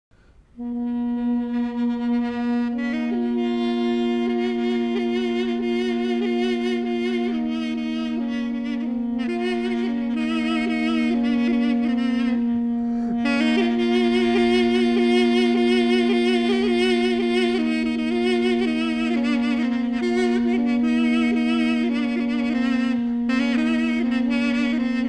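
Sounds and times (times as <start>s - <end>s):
ornamented woodwind melody: 0.4s - 25.0s
reed woodwind drone: 0.6s - 25.0s.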